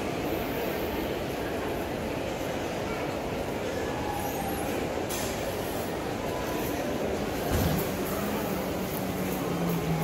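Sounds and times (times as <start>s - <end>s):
hubbub of distant voices: 0.0s - 10.0s
ventilation noise: 0.0s - 10.0s.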